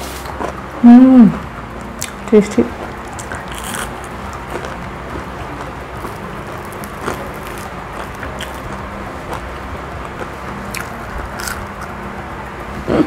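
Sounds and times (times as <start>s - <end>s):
low background hum: 0.0s - 13.0s
crunchy food being chewed: 3.2s - 12.0s.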